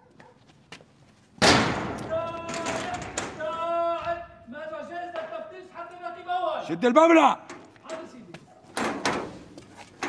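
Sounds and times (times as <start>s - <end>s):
loud sharp bang: 1.4s - 2.2s.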